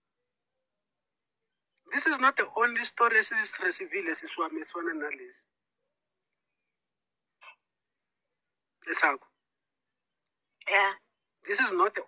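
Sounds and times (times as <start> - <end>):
person speaking: 1.8 - 5.5, 8.8 - 9.3.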